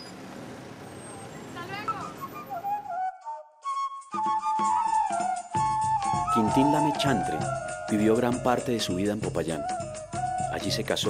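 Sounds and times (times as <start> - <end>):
street traffic: 0.0 - 3.1.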